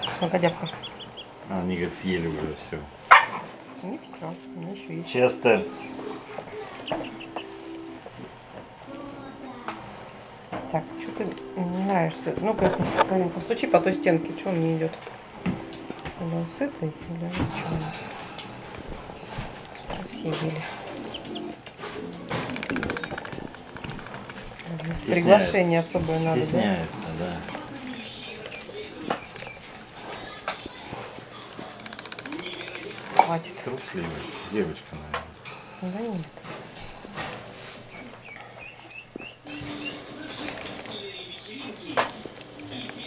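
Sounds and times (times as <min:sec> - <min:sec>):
ducklings peeping: 0:00.0 - 0:02.2, 0:03.8 - 0:07.7, 0:19.4 - 0:21.6, 0:27.2 - 0:30.0, 0:37.8 - 0:41.8.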